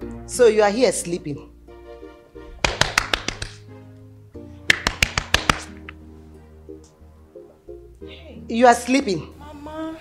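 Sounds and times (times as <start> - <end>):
soft background music: 0.0 - 10.0
sharp hand strikes: 4.7 - 5.9.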